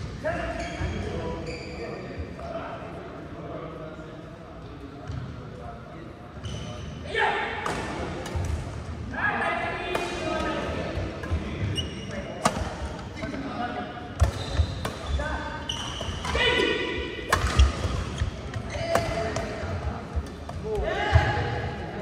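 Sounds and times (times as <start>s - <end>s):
racket hitting shuttlecock: 15.8s - 19.6s.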